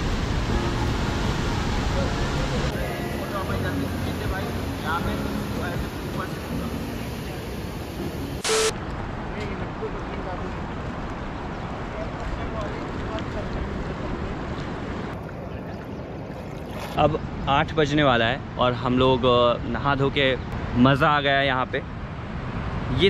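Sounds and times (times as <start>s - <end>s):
waterfall rushing: 0.0s - 8.7s.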